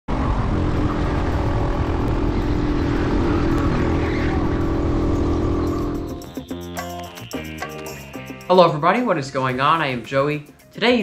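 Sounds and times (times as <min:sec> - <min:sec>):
wind rumble on microphone: 0:00.1 - 0:06.1
kart engine at high speed: 0:00.1 - 0:06.4.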